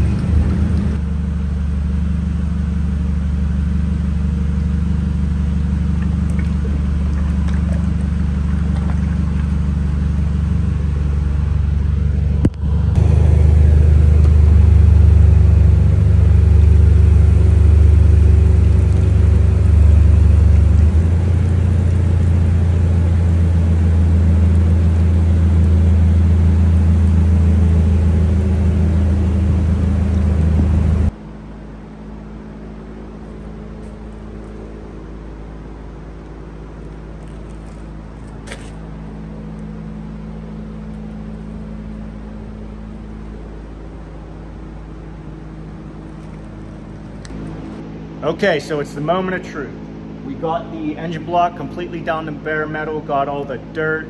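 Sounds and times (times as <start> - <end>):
loud low machine drone: 0.0 - 54.0.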